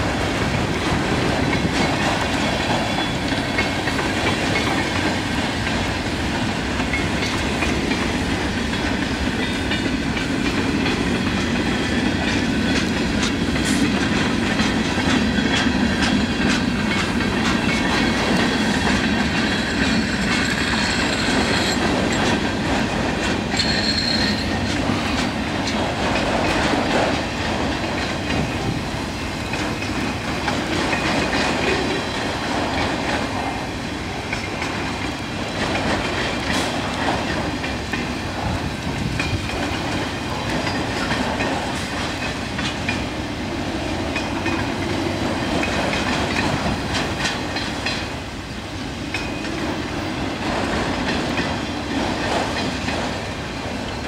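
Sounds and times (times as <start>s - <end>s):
freight train rolling past: 0.0s - 54.0s
wheels clicking over rail joints: 0.0s - 54.0s.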